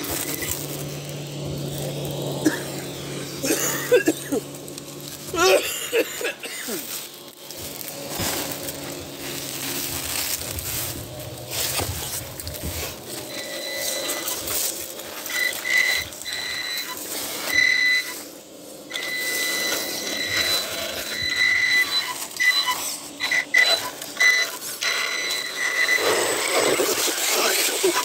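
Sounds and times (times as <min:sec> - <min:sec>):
rc car electric motor whine: 0:00.0 - 0:28.0
tyres scraping on rock and leaves: 0:00.0 - 0:28.0.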